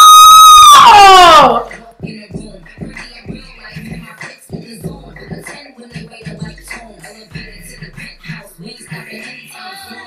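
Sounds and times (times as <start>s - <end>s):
woman screaming: 0.0s - 1.7s.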